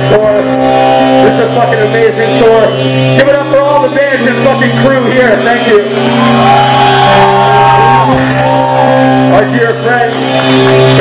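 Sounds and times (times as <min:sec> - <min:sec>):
live metal band playing: 0:00.0 - 0:11.0.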